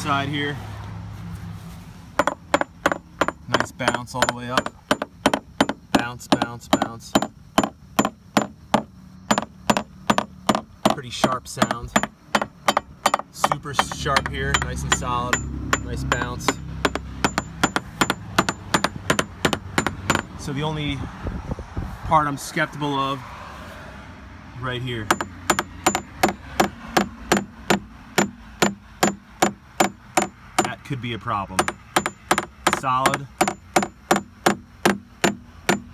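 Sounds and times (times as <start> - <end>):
hammer tapping on fiberglass: 2.2 - 20.3, 25.1 - 30.8, 31.6 - 35.9.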